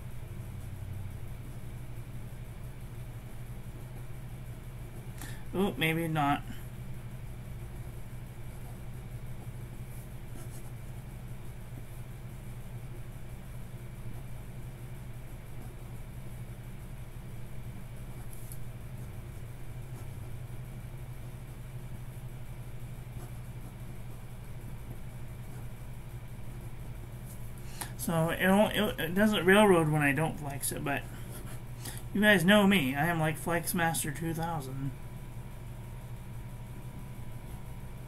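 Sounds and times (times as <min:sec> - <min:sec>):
low machine hum: 0:00.0 - 0:38.0.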